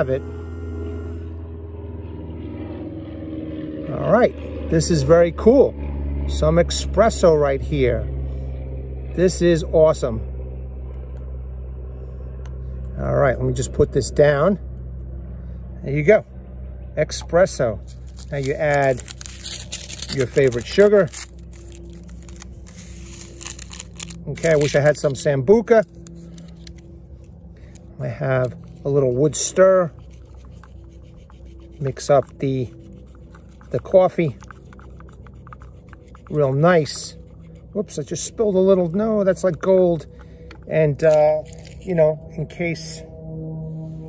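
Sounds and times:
espresso machine pump humming: 0.0s - 1.4s, 17.9s - 37.8s
paper packet rustling: 17.8s - 27.8s, 41.4s - 41.9s
sugar shaken into cup: 17.9s - 25.2s.

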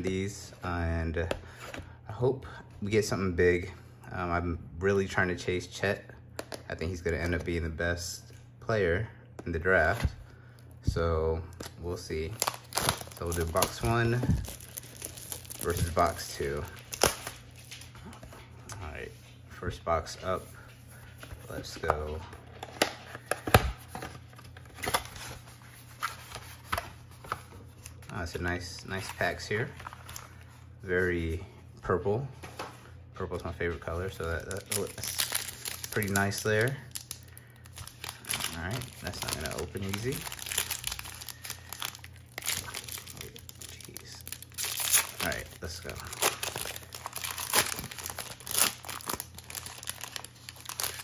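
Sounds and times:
foil wrapper tearing and crinkling: 12.1s - 17.8s, 34.3s - 51.0s.

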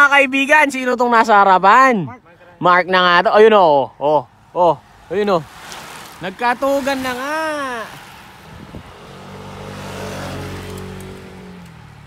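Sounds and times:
vehicle driving past: 4.9s - 12.0s.

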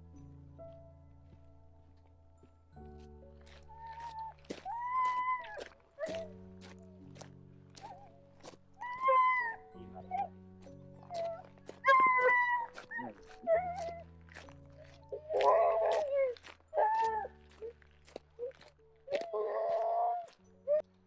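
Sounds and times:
background music with clicking beat: 2.8s - 20.9s
dog whining: 11.0s - 14.0s, 15.1s - 17.7s, 18.4s - 20.8s.

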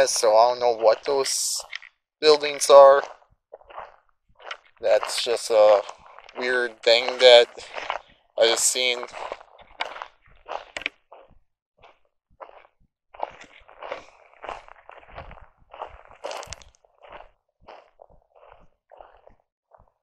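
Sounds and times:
footsteps crunching on rough ground: 0.0s - 20.0s.

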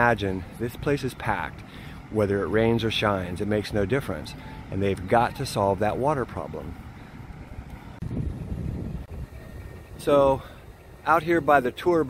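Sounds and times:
wind buffeting microphone: 6.0s - 12.0s.

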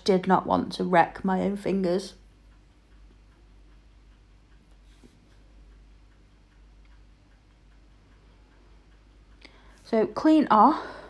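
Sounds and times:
low steady hum: 0.0s - 11.0s
faint light ticks: 1.7s - 10.6s.

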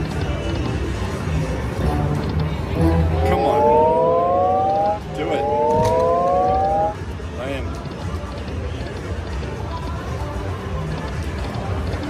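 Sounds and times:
slot machine rising chord: 1.8s - 7.0s
slot machine reels spinning: 2.1s - 7.6s.

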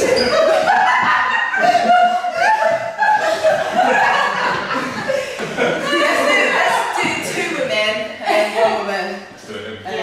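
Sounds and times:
people laughing: 0.0s - 7.6s
people talking: 5.5s - 10.0s.

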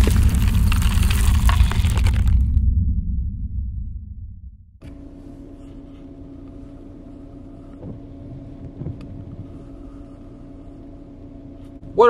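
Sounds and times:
vehicle engine idling: 4.8s - 12.0s.

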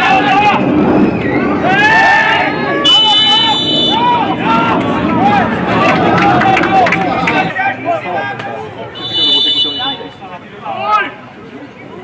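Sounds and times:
people shouting: 0.0s - 10.1s
referee's whistle blast: 2.8s - 4.1s, 9.0s - 10.2s.

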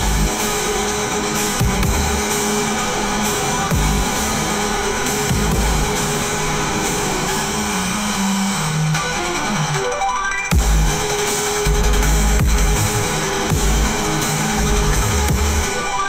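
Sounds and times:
electronic music with heavy bass: 0.0s - 16.0s.

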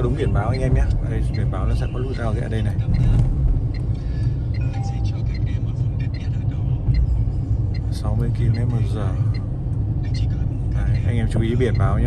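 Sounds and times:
road and tyre noise: 0.0s - 12.0s.

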